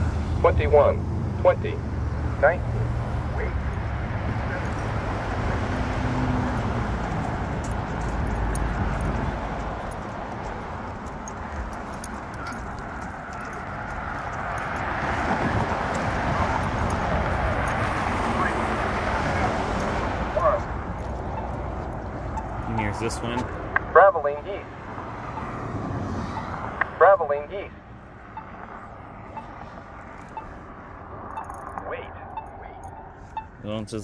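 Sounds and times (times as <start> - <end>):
road traffic: 0.0 - 34.0
vehicle passing: 0.0 - 34.0
wind rumbling on microphone: 3.6 - 22.6.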